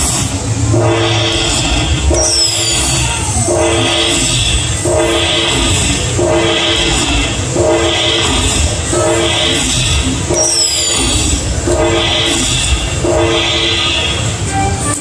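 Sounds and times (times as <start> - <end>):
slot machine chiming chord: 0.7 - 15.0.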